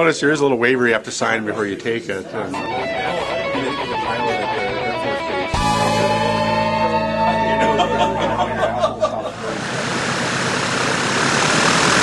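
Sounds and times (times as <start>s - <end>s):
light aircraft engine and propeller: 9.4s - 12.0s.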